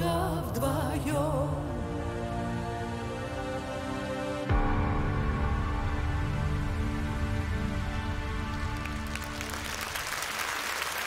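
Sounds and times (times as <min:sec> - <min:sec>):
audience applause: 0:08.2 - 0:11.0.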